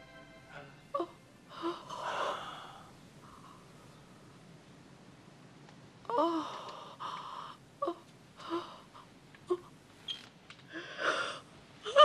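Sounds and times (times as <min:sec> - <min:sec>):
woman sobbing: 0:10.7 - 0:12.0.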